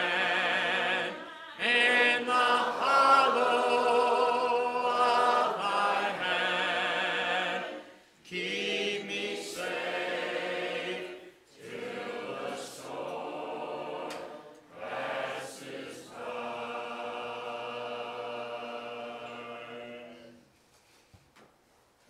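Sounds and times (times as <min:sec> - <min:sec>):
congregation singing a hymn: 0:00.0 - 0:20.5.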